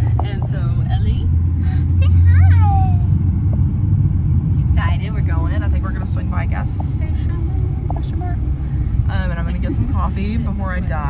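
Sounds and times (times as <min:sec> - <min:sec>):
road and engine rumble in car: 0:00.0 - 0:11.0.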